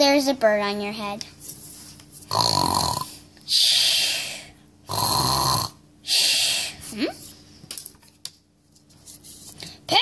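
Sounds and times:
person imitating snoring: 0:02.3 - 0:04.1, 0:04.8 - 0:06.5.

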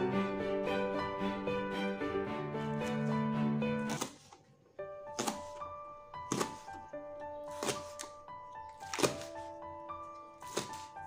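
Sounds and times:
background music: 0:00.0 - 0:11.0
knife chopping on cutting board: 0:05.1 - 0:05.6, 0:06.3 - 0:06.8, 0:07.5 - 0:08.2, 0:08.8 - 0:09.4, 0:10.4 - 0:11.0.

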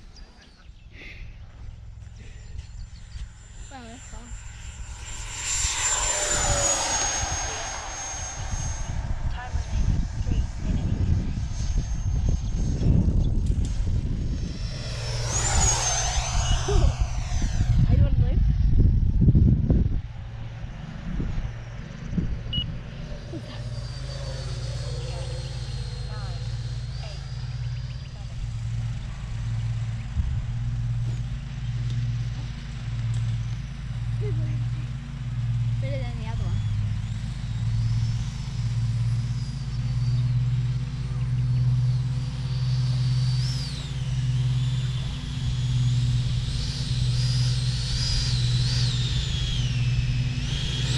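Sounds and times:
model jet fan whine: 0:00.0 - 0:50.9
pulsing low hum: 0:00.0 - 0:50.9
wind buffeting microphone: 0:01.6 - 0:32.1.

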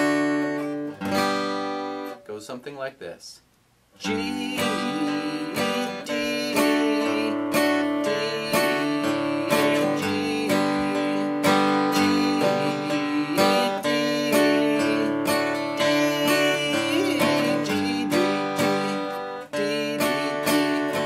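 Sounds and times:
acoustic guitar strumming: 0:00.0 - 0:02.6, 0:04.0 - 0:21.0.

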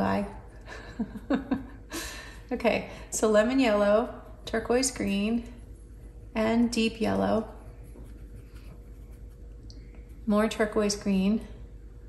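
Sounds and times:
steady low hum: 0:00.0 - 0:12.0
paintbrush scrubbing in palette: 0:04.2 - 0:10.8.

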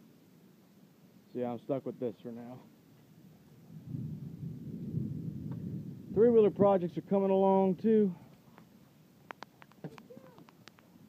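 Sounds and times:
sharp clicks: 0:09.2 - 0:10.9.

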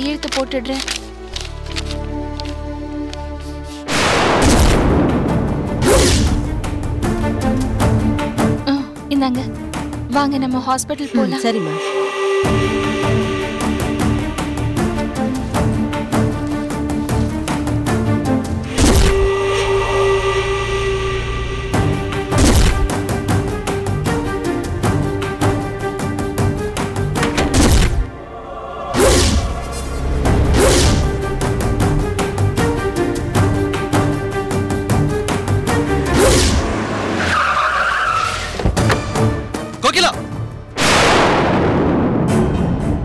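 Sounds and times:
sustained drone note: 0:11.0 - 0:16.2, 0:18.6 - 0:24.4
low hum: 0:11.3 - 0:26.0, 0:27.2 - 0:36.0
whoosh hit: 0:18.7 - 0:23.4, 0:28.8 - 0:32.3
car tyres screeching: 0:35.9 - 0:39.2.

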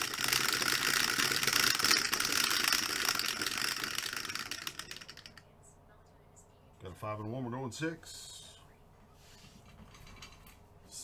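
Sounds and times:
dice rattling in plastic dome: 0:00.0 - 0:05.4.

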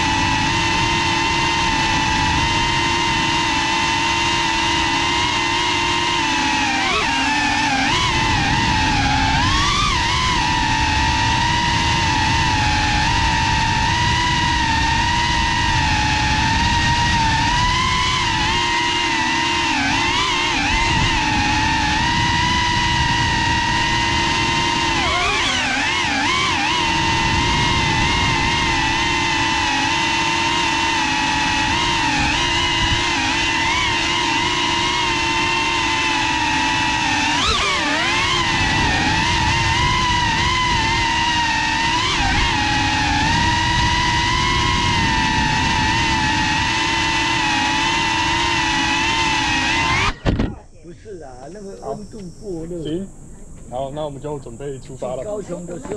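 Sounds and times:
drone motors whining: 0:00.0 - 0:55.9.

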